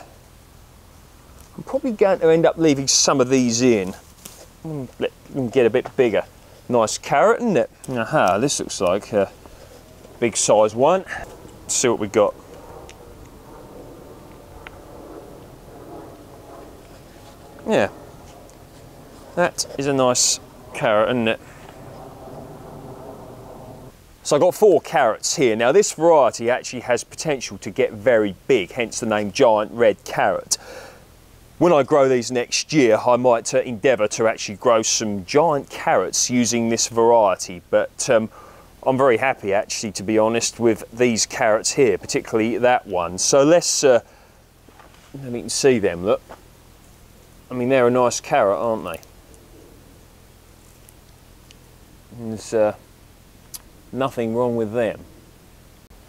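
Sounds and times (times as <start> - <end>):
background hiss: 0.0 - 56.0
engine hum: 0.0 - 56.0.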